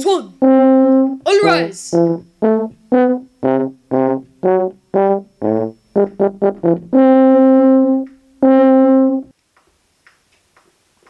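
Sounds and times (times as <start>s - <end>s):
brass instruments playing tune: 0.4s - 9.3s.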